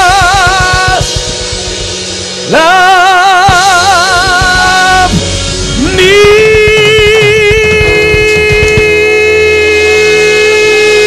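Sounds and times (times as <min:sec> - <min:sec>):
organ chord: 0:00.0 - 0:11.0.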